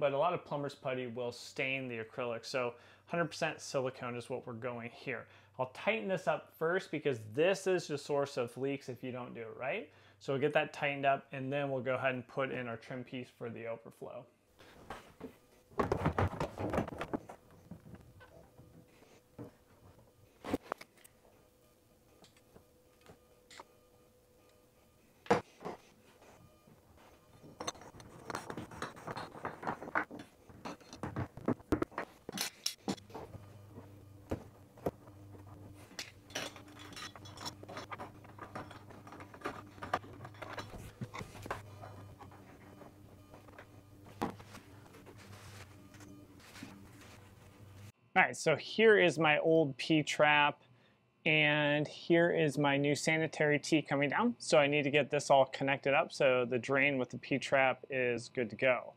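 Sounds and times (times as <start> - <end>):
metal parts clicking and clinking: 32.3 - 33.0, 35.8 - 41.6.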